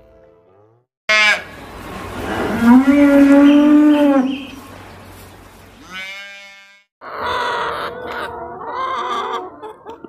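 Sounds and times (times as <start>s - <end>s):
calf bleating: 5.8s - 6.8s.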